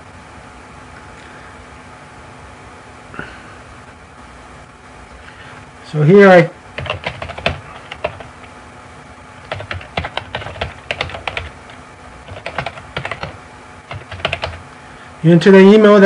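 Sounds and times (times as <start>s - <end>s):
keyboard typing clicks: 6.8s - 8.3s, 9.5s - 11.6s, 12.3s - 14.6s.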